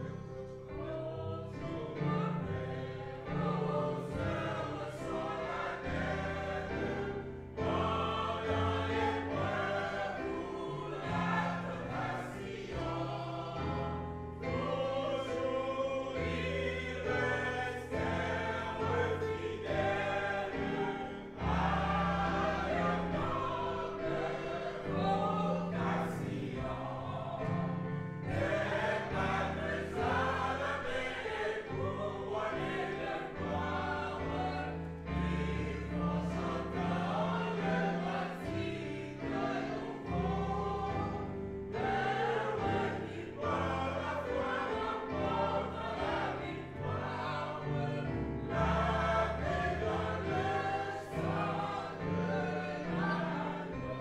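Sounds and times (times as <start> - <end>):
congregation singing a hymn: 0.0 - 54.0.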